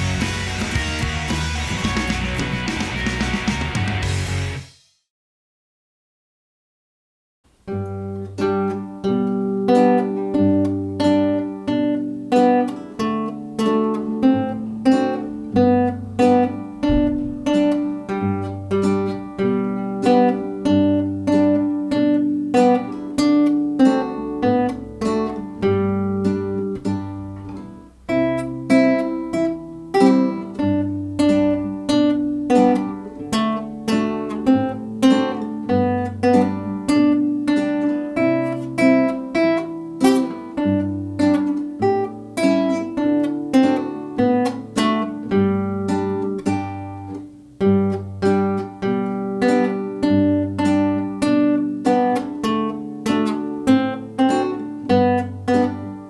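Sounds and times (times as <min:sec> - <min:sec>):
fingerstyle classical guitar: 0:00.0 - 0:04.3, 0:07.5 - 0:56.0.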